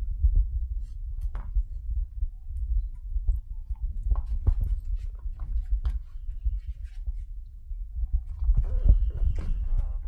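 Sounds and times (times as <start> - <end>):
low thumping rumble: 0.0 - 10.0
ball and paws knocking on tile: 2.6 - 6.7.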